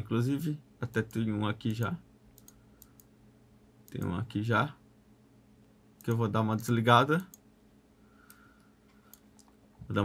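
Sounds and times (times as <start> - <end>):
computer mouse clicks: 2.4 - 3.1, 8.2 - 9.6.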